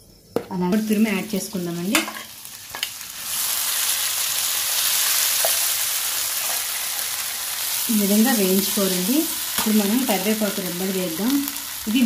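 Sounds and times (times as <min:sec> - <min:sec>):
mango sizzling in hot oil: 0:00.8 - 0:12.0.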